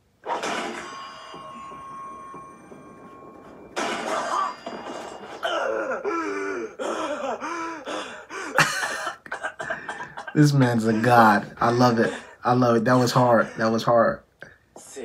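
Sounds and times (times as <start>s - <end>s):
ringing high tones: 0.2s - 5.7s.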